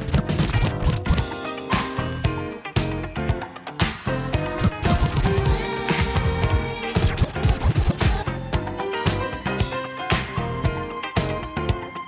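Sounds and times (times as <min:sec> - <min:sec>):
vinyl record scratching: 0:00.0 - 0:01.2, 0:04.4 - 0:08.3
hip hop funk track: 0:00.0 - 0:12.0.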